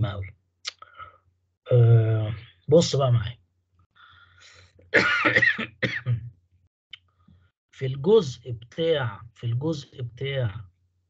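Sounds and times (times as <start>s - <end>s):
person clearing throat: 5.0s - 6.3s.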